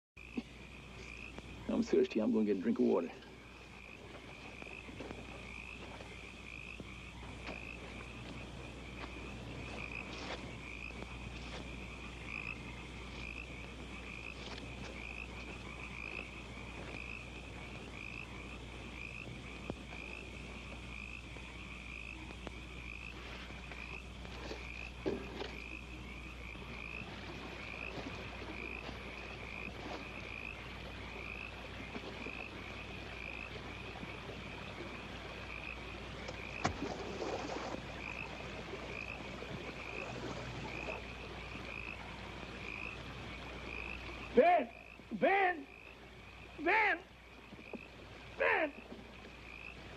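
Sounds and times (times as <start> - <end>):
frogs calling: 0.2 - 49.9.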